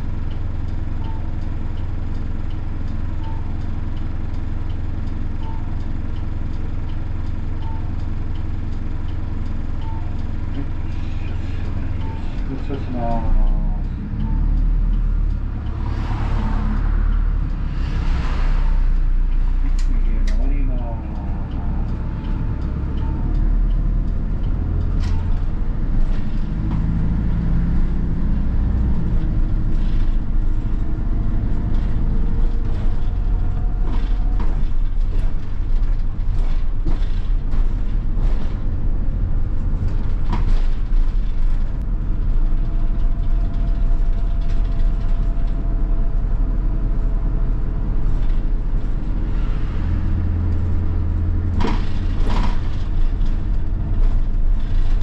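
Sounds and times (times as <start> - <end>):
diesel bus engine: 0.0 - 55.0
road noise: 0.0 - 55.0
body rattles and knocks: 29.4 - 46.2, 50.5 - 55.0.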